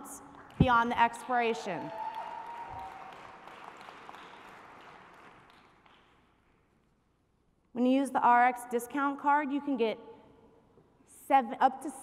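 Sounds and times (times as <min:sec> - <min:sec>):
faint audience applause: 0:01.2 - 0:06.1.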